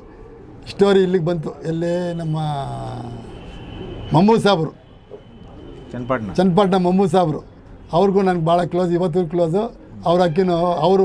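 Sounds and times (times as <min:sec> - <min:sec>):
pigeons cooing: 0:00.0 - 0:00.8, 0:02.7 - 0:04.1, 0:05.4 - 0:06.0.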